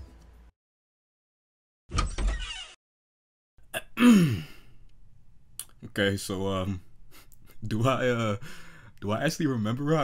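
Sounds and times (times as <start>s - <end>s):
man sighing: 4.0s - 4.8s.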